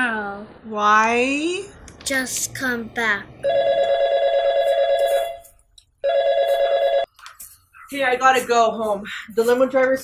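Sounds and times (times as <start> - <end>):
telephone ringing: 3.4 - 7.1.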